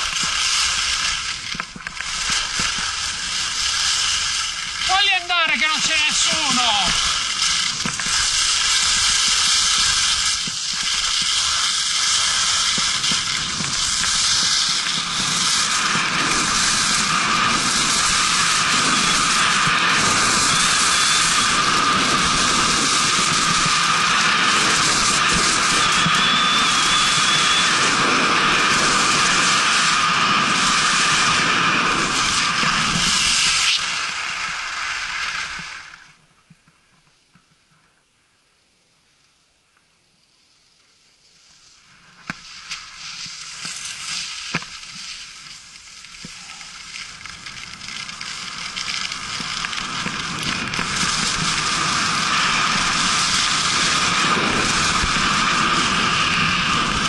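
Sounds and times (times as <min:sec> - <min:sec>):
wind rushing over microphone: 0:00.0 - 0:36.0, 0:47.4 - 0:57.0
skis scraping over hard snow: 0:00.0 - 0:36.1, 0:41.3 - 0:57.0.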